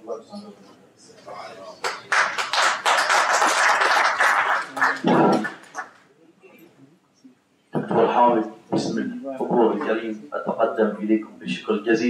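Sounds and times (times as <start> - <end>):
audience applause: 1.8 - 6.0.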